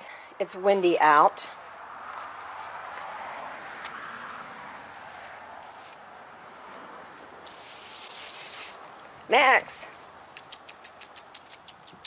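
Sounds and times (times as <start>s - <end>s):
bird chirping rapidly: 7.4s - 8.8s, 10.4s - 12.0s.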